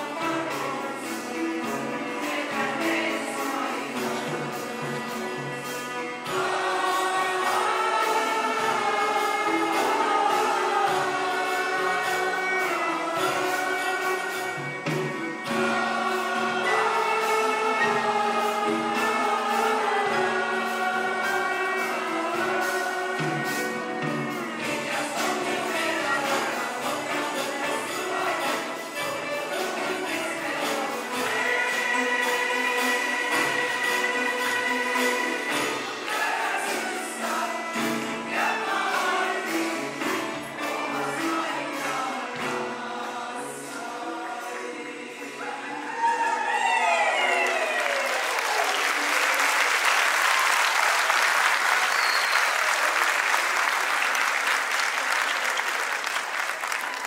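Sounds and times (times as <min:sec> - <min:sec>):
instrumental ensemble: 0:00.0 - 0:57.0
mixed choir singing: 0:00.0 - 0:57.0.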